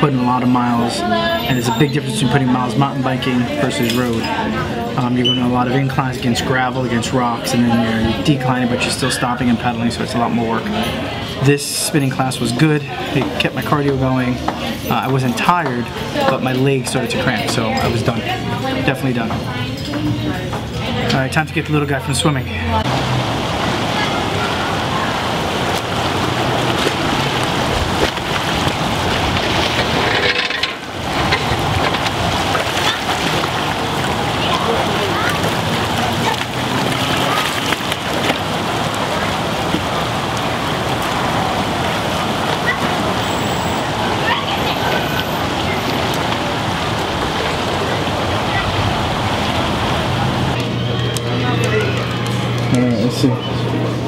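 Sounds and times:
faint voices: 0.0 - 54.0
swimmers splashing in a pool: 0.0 - 54.0.

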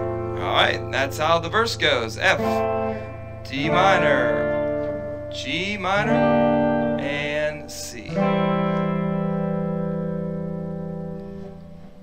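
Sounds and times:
electric guitar chord ringing: 0.0 - 12.0.

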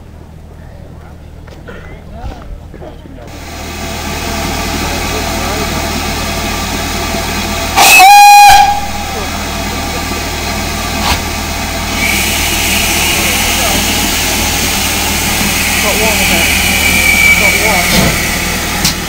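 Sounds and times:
steam hissing: 3.3 - 10.2, 11.9 - 19.0
steam whistle blast: 7.8 - 9.2, 12.0 - 18.9.

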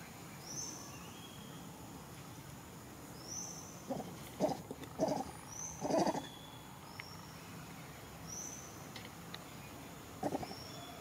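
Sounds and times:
thin high bird calls: 3.2 - 8.8
monkey low calls: 3.9 - 6.3, 10.2 - 10.7.

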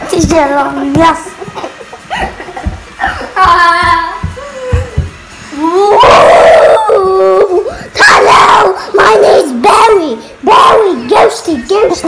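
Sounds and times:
child howling ghost imitation: 3.6 - 9.4
child shouting: 5.6 - 12.0.

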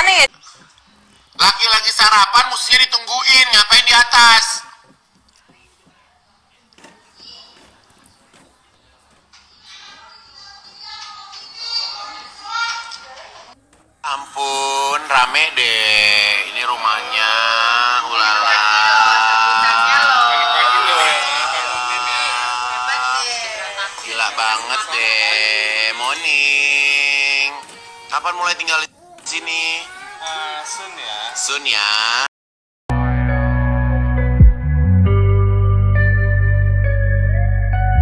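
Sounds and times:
faint indistinct voices: 4.8 - 31.9.

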